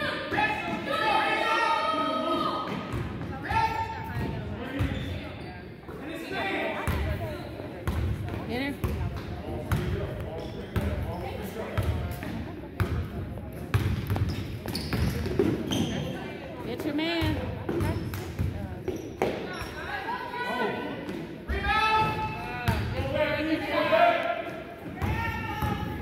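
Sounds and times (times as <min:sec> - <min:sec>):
voices of players and spectators: 0:00.0 - 0:26.0.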